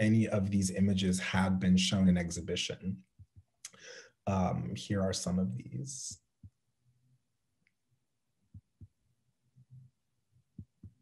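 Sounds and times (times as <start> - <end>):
soft low thumps: 10.6 - 11.0.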